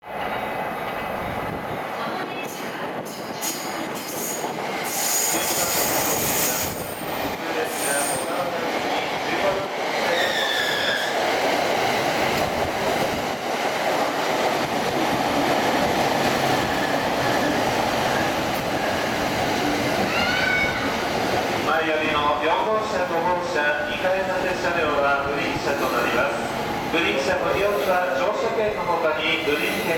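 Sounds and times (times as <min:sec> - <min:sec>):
train wheels rumbling on rail: 0:00.0 - 0:29.9.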